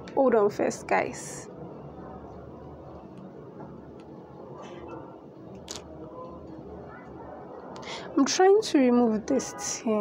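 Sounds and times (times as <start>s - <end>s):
steady low hum: 0.0s - 10.0s
faint clicks and taps: 3.0s - 4.8s.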